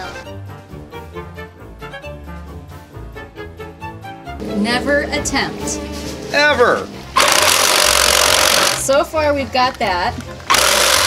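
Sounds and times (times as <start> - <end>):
reciprocating saw cutting plastic: 7.2 - 8.9, 10.5 - 11.0.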